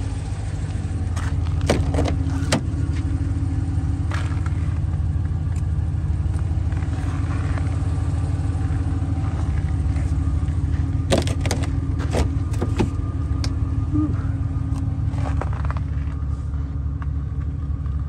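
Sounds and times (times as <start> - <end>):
car engine idling: 0.0 - 18.0
sharp clicks and knocks: 11.1 - 13.6.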